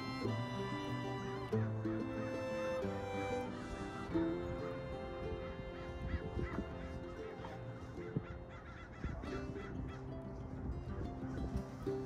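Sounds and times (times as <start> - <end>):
flock of birds calling: 0.0 - 10.6
background music with held notes: 0.0 - 12.0.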